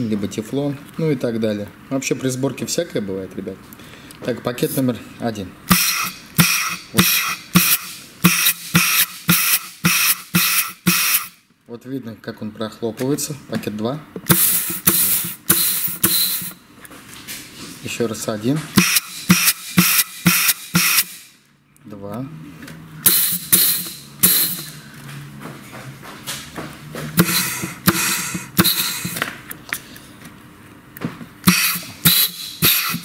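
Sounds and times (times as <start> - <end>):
short hiss of air: 5.7 - 11.3, 14.3 - 16.6, 18.8 - 21.3, 23.0 - 24.8, 27.2 - 29.2, 31.5 - 33.0
clutch piston thump: 27.2 - 29.4.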